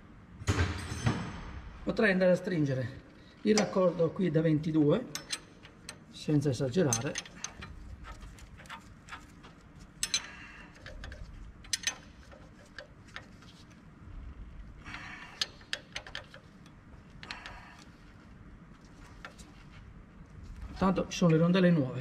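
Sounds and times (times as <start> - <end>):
wrench clicking: 5.1 - 6.2, 6.8 - 13.4, 14.9 - 17.9
metal clinks: 6.9 - 12.9.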